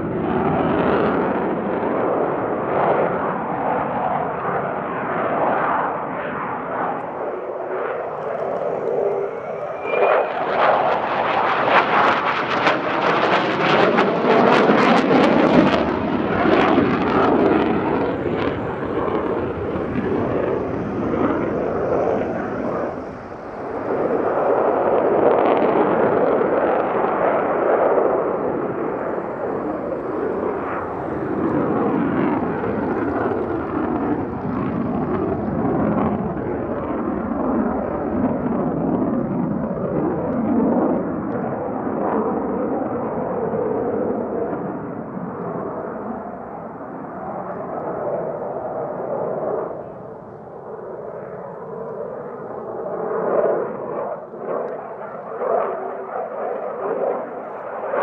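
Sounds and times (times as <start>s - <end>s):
jet fighter roar: 0.0s - 58.0s.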